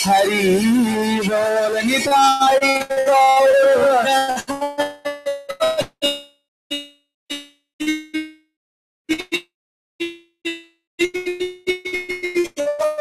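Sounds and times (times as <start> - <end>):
held sung note with accompaniment: 0.0 - 4.4.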